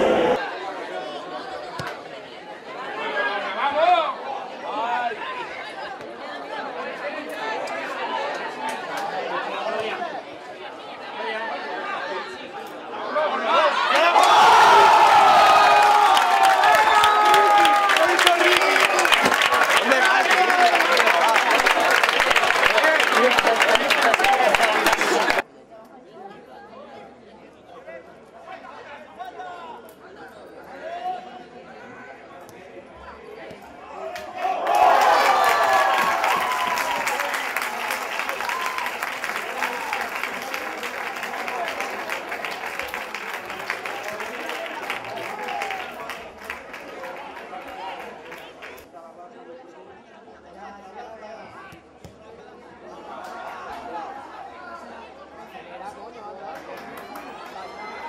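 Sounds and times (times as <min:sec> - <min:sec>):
crowd chatter and calls: 0:00.0 - 0:58.0
spectators applauding and cheering: 0:13.8 - 0:25.4, 0:34.1 - 0:48.9, 0:56.6 - 0:58.0.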